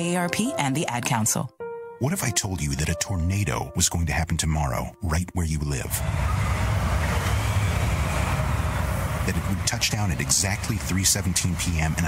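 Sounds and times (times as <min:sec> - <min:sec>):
rumbling storm wind: 0:05.9 - 0:12.0.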